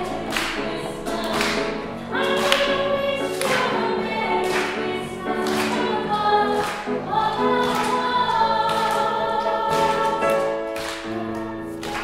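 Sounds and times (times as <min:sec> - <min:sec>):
grand piano accompaniment: 0:00.0 - 0:12.0.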